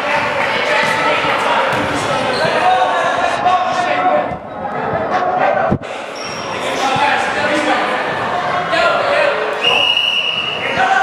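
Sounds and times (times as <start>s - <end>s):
spectators talking: 0.0s - 11.0s.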